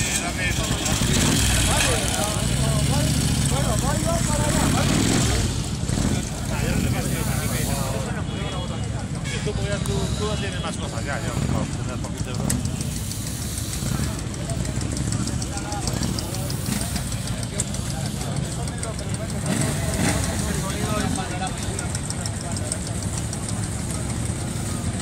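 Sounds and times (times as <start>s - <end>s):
motorcycle engines running: 0.0s - 25.0s
murmur of people talking: 0.0s - 25.0s.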